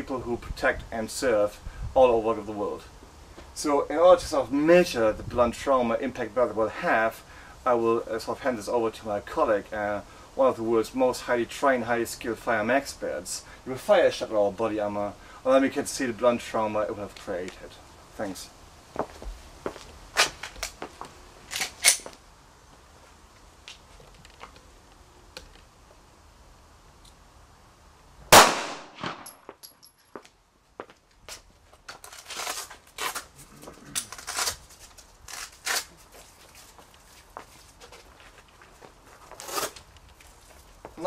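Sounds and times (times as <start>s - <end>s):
pistol shot: 28.3s - 29.4s.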